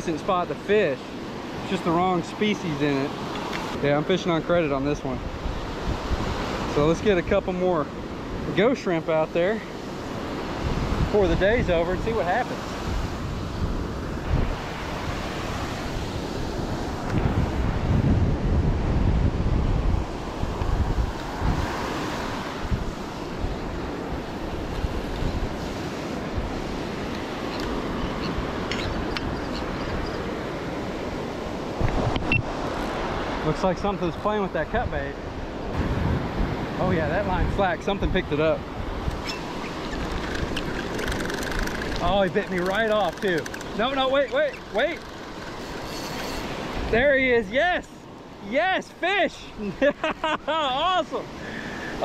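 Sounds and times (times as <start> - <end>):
surf: 0.0 - 52.0
wind buffeting microphone: 9.8 - 33.8, 34.7 - 47.1
fishing reel whirring and ticking: 39.7 - 46.6.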